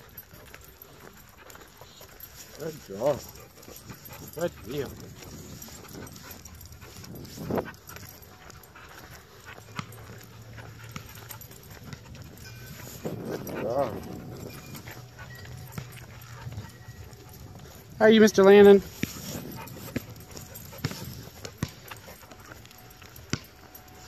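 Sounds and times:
dog moving on asphalt: 0:00.0 - 0:24.0
footsteps on asphalt: 0:00.0 - 0:24.0.

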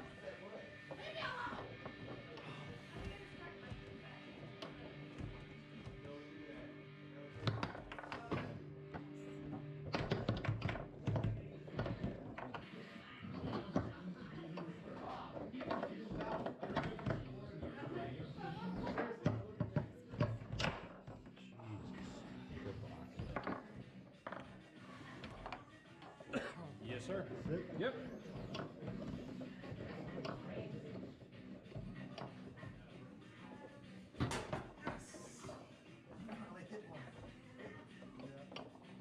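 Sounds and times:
voices: 0:00.0 - 0:09.1
background music: 0:00.0 - 0:39.0
foosball players knocking ball: 0:07.3 - 0:21.4, 0:22.0 - 0:25.7, 0:27.2 - 0:32.8, 0:34.2 - 0:36.4.

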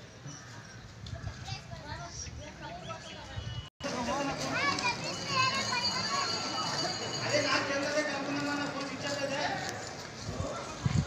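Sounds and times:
children calling and chattering: 0:00.2 - 0:11.0.

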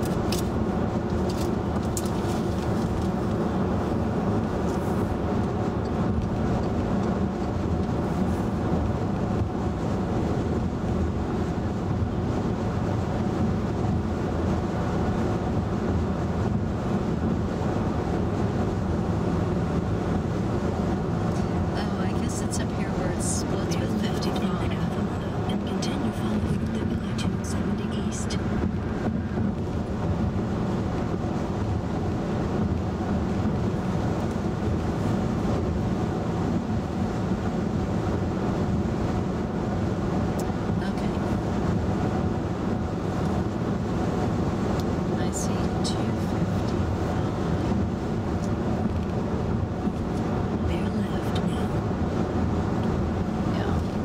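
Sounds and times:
road and tyre noise in car: 0:00.0 - 0:54.0.

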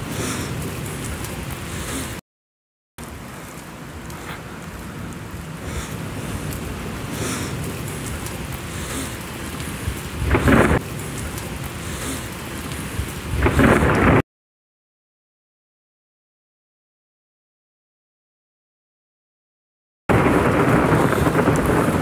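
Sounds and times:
rain rushing: 0:00.0 - 0:02.2, 0:03.0 - 0:14.2, 0:20.1 - 0:22.0.

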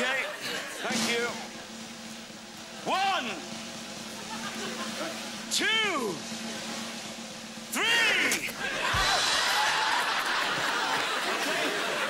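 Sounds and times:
audience screaming and laughing: 0:03.9 - 0:05.5, 0:08.5 - 0:12.0.

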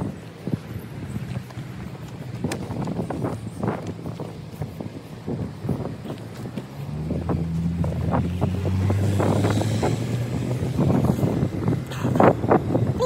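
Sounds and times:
footsteps on tarmac: 0:00.0 - 0:12.5
wind on microphone: 0:00.0 - 0:13.0
car engine passing: 0:05.3 - 0:12.8.

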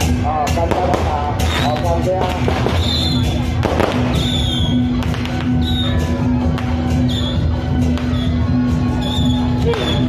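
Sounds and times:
firecrackers popping: 0:00.0 - 0:08.4, 0:09.0 - 0:10.0
loud festival music: 0:00.0 - 0:10.0.

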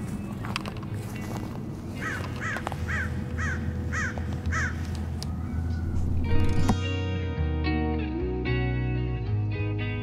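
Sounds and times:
crow cawing: 0:02.0 - 0:04.9.

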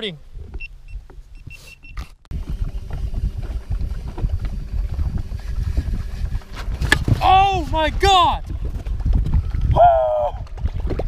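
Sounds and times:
wind and water rumble: 0:02.3 - 0:11.0.

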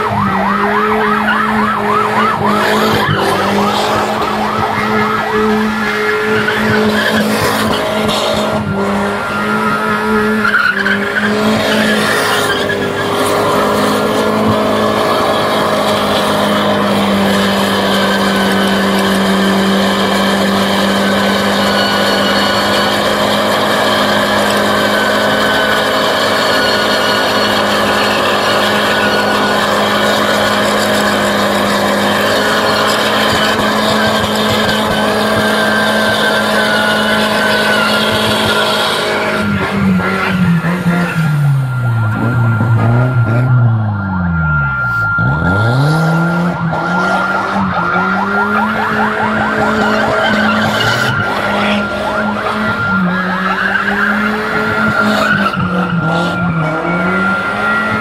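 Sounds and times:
tyres squealing: 0:00.0 - 0:43.8, 0:44.9 - 0:58.0
car engine at high revs: 0:00.0 - 0:58.0.

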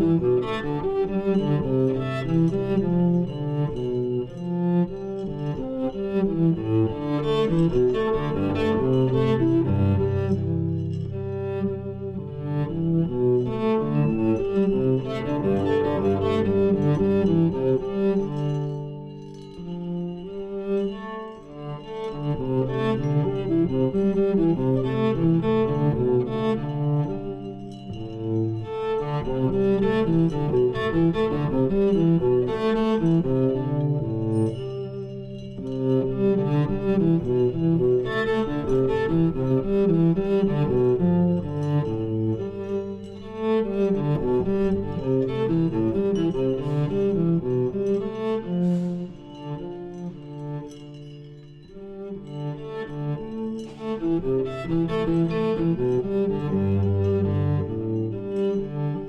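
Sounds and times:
bowed cello: 0:00.0 - 0:59.0
mallet percussion notes: 0:47.7 - 0:52.4.

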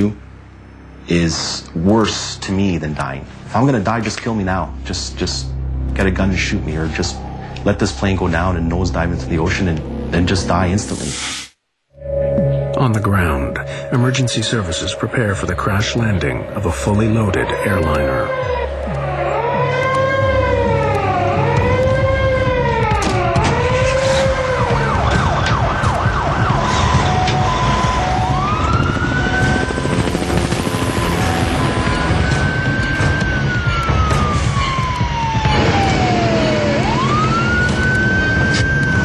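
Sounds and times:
emergency vehicle sirens wailing: 0:13.6 - 0:39.0.

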